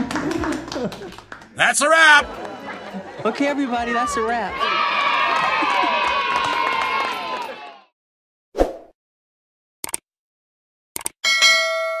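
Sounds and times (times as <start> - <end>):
quick clicks: 9.8 - 10.0, 11.0 - 11.2
bell-like chime ringing: 11.2 - 12.0.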